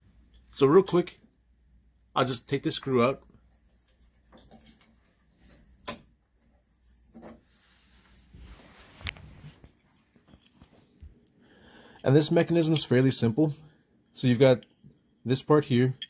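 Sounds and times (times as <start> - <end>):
soft rubbing and scraping: 6.4 - 11.1.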